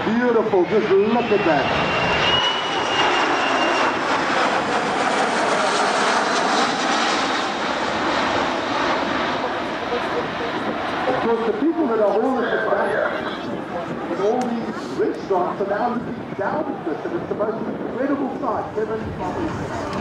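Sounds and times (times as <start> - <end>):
jet engine roar overhead: 0.0 - 20.0.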